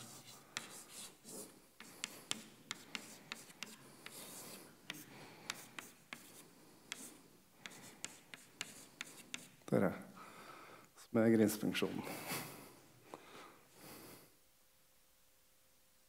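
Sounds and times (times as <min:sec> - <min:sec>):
chalk scratching: 0:00.0 - 0:09.6
chalk tapping on blackboard: 0:00.0 - 0:09.6.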